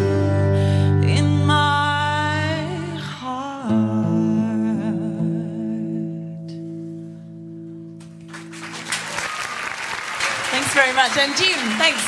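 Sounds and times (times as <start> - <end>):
wordless singing with vibrato: 0.0 - 6.6.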